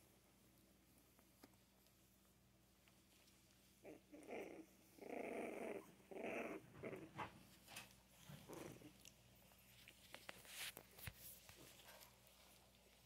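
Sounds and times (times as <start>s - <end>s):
puppies growling and grunting: 3.8s - 9.4s.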